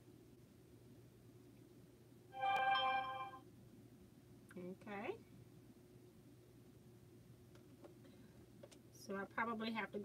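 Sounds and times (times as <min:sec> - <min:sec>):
low steady hum: 0:00.0 - 0:10.0
smartphone alert chime: 0:02.4 - 0:03.4.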